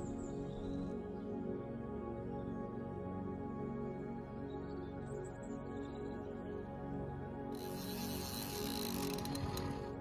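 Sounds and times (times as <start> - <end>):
background music: 0.0 - 10.0
fishing reel drag buzzing: 7.6 - 10.0
reel clicks: 7.6 - 10.0.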